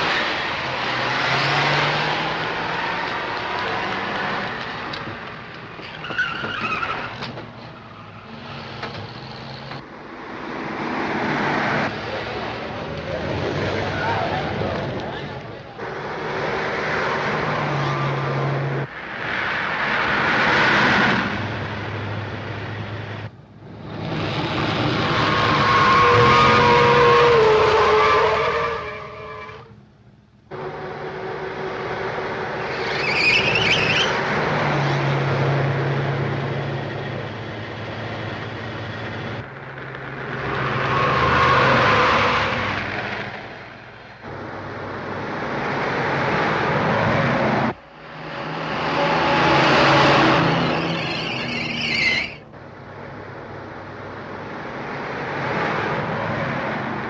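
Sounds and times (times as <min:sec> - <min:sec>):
car engines under heavy throttle: 0:00.0 - 0:57.0
high tyre squeal: 0:05.8 - 0:09.7, 0:15.8 - 0:18.9, 0:23.8 - 0:29.8, 0:30.5 - 0:35.1, 0:39.4 - 0:43.0, 0:47.8 - 0:52.6.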